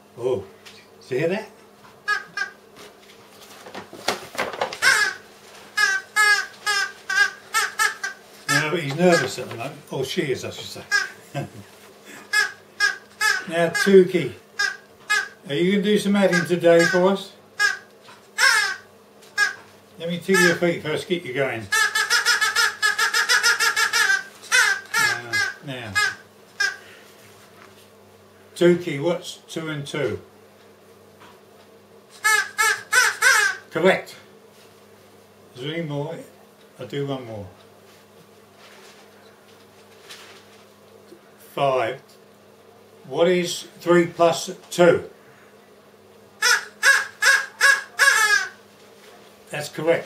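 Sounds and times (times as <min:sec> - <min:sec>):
puppeteer squawking caws: 0:02.0 - 0:02.6, 0:04.7 - 0:09.6, 0:10.8 - 0:11.5, 0:12.2 - 0:15.5, 0:16.1 - 0:19.7, 0:20.3 - 0:20.6, 0:21.7 - 0:27.0, 0:32.1 - 0:33.7, 0:46.4 - 0:48.6
person giggling chatter: 0:10.8 - 0:12.5.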